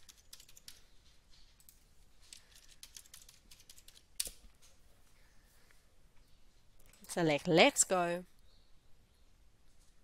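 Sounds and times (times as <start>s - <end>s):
typing on computer keyboard: 0.0s - 0.8s, 1.6s - 4.4s.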